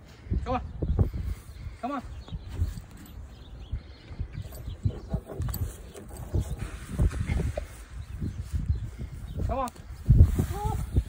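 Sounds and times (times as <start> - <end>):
hooves thumping and shuffling: 2.2 - 8.8.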